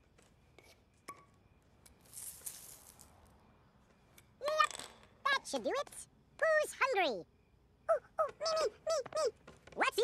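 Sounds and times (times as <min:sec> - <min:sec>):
soft high rustling hiss: 0:01.8 - 0:03.4.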